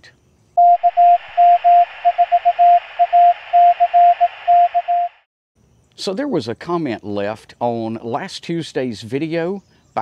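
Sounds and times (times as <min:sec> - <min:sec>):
morse code tone: 0:00.6 - 0:05.2.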